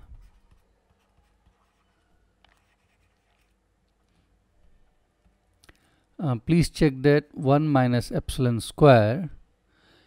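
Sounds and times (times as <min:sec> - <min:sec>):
stylus scratching on a tablet screen: 0:00.0 - 0:03.7.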